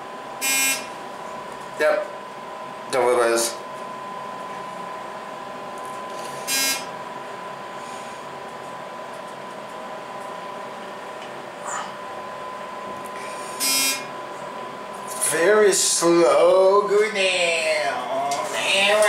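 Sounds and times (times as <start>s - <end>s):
elevator buzzer: 0.0s - 1.1s, 6.1s - 7.2s, 13.2s - 14.4s.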